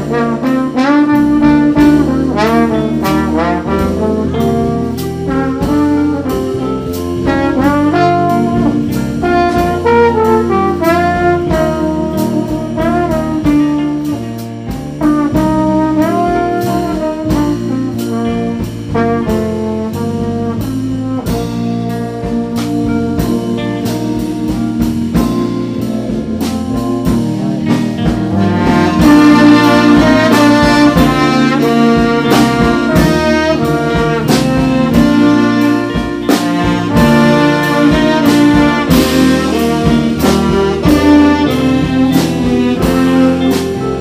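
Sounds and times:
jazz band playing: 0.0 - 44.0
saxophone: 0.0 - 44.0
trombone: 0.0 - 44.0.

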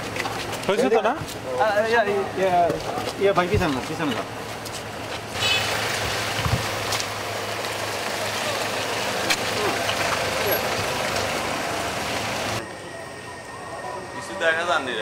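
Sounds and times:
people talking: 0.6 - 4.3, 8.1 - 11.2, 12.6 - 15.0
van engine driving off: 4.9 - 12.6.

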